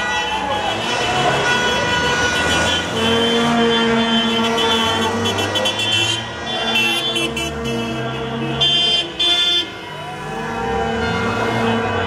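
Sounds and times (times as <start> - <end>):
car engines running: 0.0 - 12.0
car horns honking: 0.0 - 12.0.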